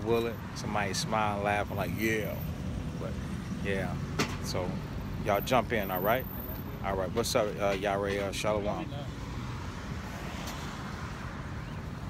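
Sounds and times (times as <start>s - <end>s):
low traffic hum: 0.0s - 12.0s.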